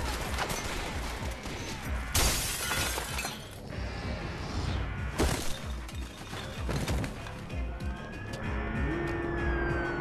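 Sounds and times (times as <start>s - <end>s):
glass shattering: 2.1s - 3.6s
soundtrack music: 3.6s - 10.0s.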